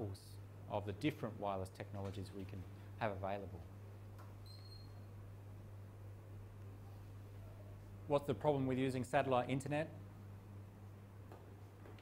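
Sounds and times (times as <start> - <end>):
steady low hum: 0.0 - 12.0
faint high-pitched squeak: 4.4 - 5.1.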